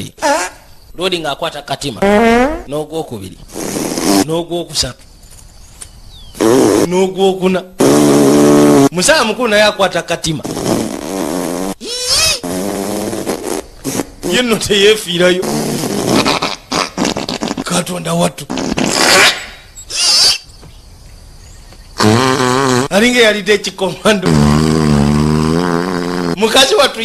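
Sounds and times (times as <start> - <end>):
person's non-word vocal cry: 11.8 - 12.4.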